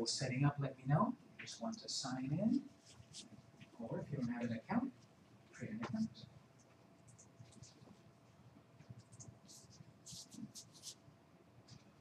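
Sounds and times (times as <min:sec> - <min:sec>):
scratching and handling noises: 0:08.8 - 0:11.0.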